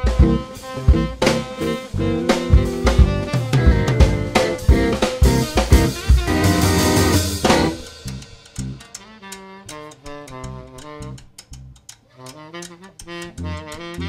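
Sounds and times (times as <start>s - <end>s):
bass: 0.0s - 9.0s, 9.7s - 12.0s, 13.0s - 14.0s
blues band playing: 0.0s - 14.0s
light drum ticks: 0.0s - 14.0s
wavering saxophone notes: 0.0s - 14.0s.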